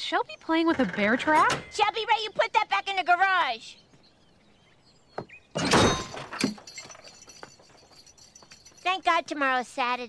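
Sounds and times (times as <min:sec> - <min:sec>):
bear trap crashing shut: 0:05.6 - 0:06.7.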